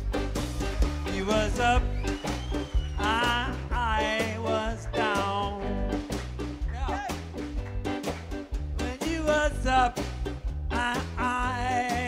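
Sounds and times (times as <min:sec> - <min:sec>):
bass: 0:00.0 - 0:12.0
drum kit beat: 0:00.0 - 0:12.0.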